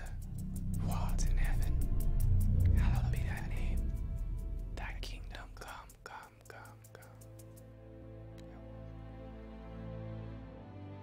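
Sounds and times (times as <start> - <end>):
person whispering: 0.0 - 7.3, 8.3 - 8.8
sustained trailer music: 0.0 - 11.0.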